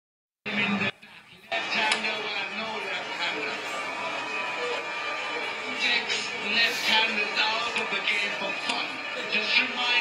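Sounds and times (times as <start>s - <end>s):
person speaking on television: 0.4s - 10.0s
broadcast music: 0.5s - 10.0s.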